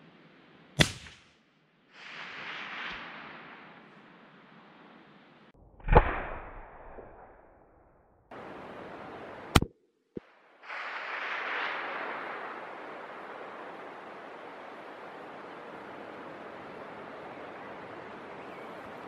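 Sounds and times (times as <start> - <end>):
rifle shot echoing: 0.8 - 1.4
sharp crack: 0.8 - 1.4, 2.0 - 3.6, 5.8 - 7.8
wind hiss: 1.9 - 5.5, 10.2 - 19.0.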